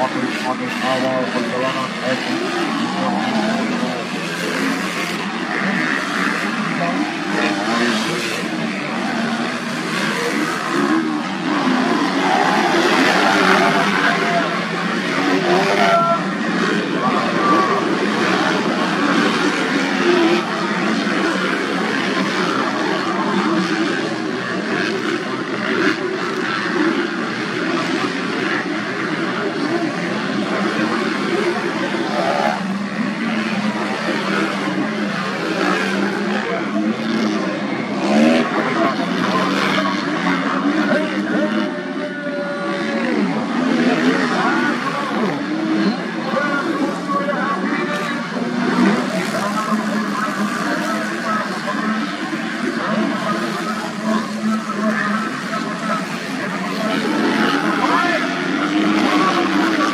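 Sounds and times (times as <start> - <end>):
motocross bike engines revving: 0.0 - 59.9.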